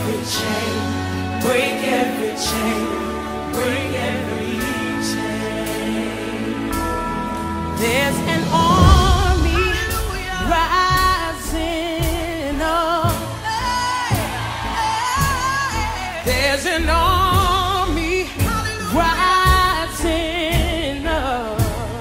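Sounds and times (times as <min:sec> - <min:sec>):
band with bass and drums: 0:06.7 - 0:16.4.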